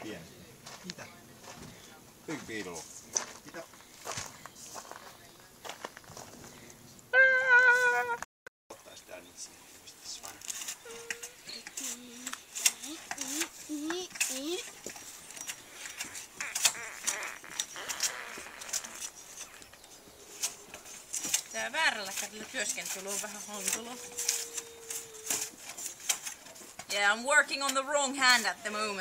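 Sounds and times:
blade scraping bark off wood: 0:10.4 - 0:28.8.

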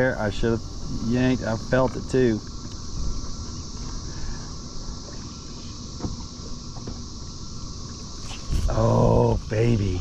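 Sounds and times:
high insect buzz: 0:00.0 - 0:10.0
wind rumble on microphone: 0:02.5 - 0:03.8, 0:08.2 - 0:10.0.

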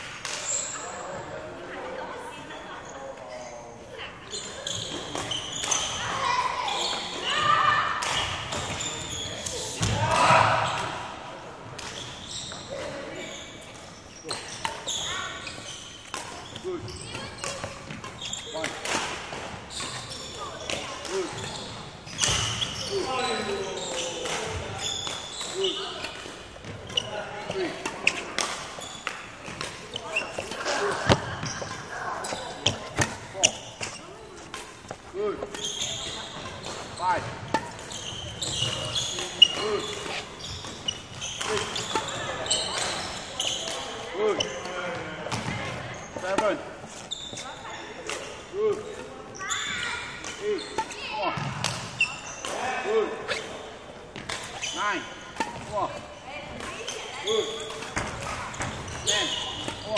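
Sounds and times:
voices echoing in hall: 0:00.0 - 0:59.9.

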